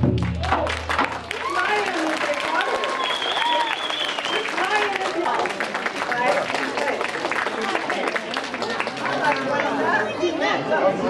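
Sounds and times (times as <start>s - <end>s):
drumming: 0.0s - 2.0s
audience applauding: 0.1s - 10.0s.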